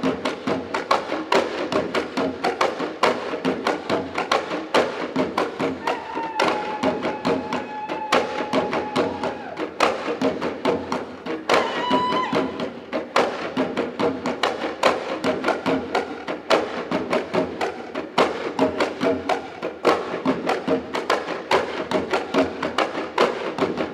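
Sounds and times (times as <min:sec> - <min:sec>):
hand drums fast rhythm: 0:00.0 - 0:23.9.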